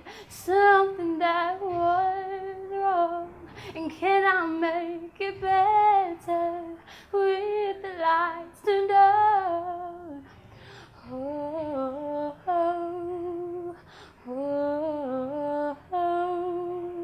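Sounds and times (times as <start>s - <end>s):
woman singing a cappella: 0.0s - 17.0s.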